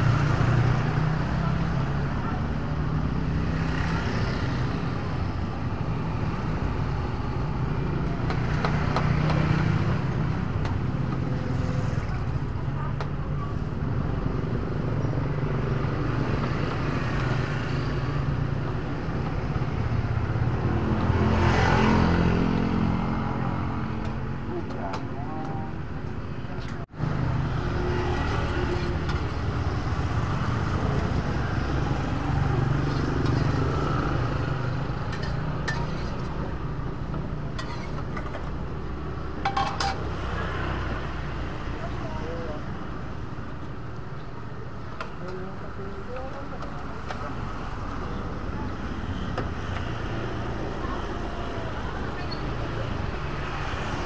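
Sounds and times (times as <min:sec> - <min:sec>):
passing traffic rumble: 0:00.0 - 0:54.0
vehicle passing by: 0:19.6 - 0:24.0.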